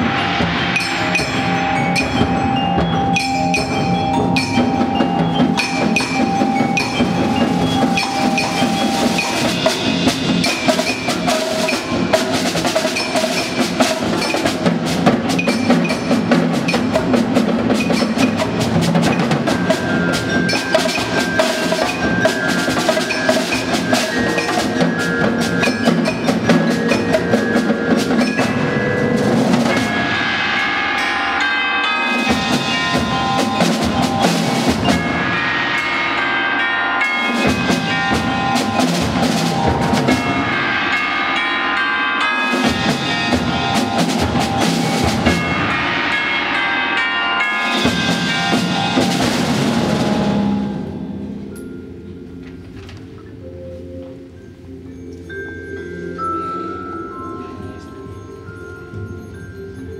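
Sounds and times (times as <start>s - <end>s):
snare and concert drums: 0.0s - 31.3s, 32.1s - 36.2s, 37.2s - 41.2s, 42.5s - 46.4s, 47.7s - 51.5s
mallet instrument melody: 0.0s - 59.9s
tubular bells ringing: 0.0s - 59.9s.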